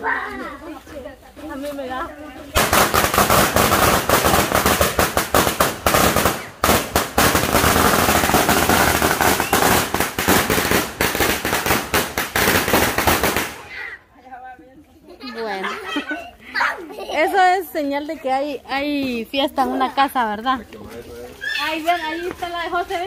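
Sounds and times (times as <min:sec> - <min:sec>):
firecrackers crackling: 0:02.5 - 0:13.9.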